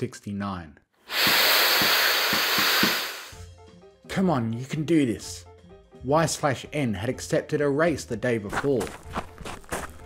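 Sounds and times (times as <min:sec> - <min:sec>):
harsh hissing blast: 0:01.1 - 0:03.4.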